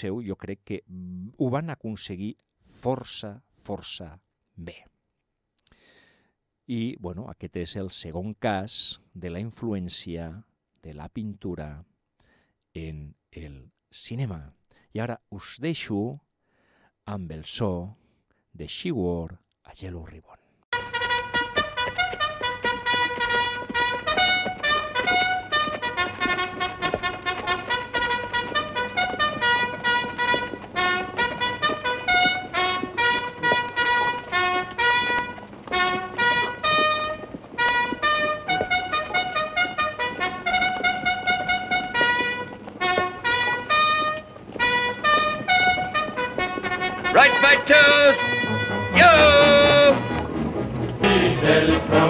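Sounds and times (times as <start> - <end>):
brass bugle call: 20.7 - 52.0
voices singing: 47.1 - 52.0.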